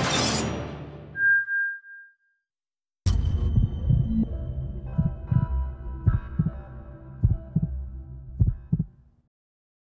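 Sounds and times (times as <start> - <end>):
heartbeat-like double thumps: 3.1 - 4.3, 4.9 - 6.6, 7.2 - 9.0.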